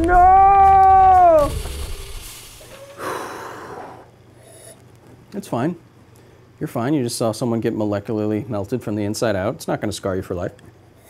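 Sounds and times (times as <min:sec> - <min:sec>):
person screaming high-pitched: 0:00.0 - 0:01.6
hiss: 0:01.4 - 0:04.1.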